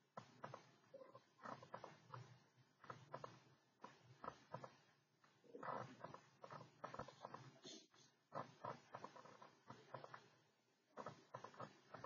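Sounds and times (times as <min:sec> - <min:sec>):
computer mouse clicking: 0:11.0 - 0:12.0.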